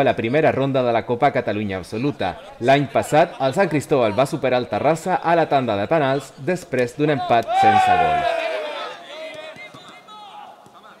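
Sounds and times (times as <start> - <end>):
distant players calling: 7.2 - 11.0
balls being kicked: 9.3 - 10.8.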